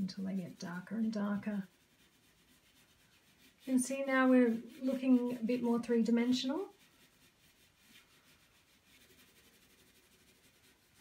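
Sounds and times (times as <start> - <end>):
pencil scratching on paper: 0.0 - 11.0.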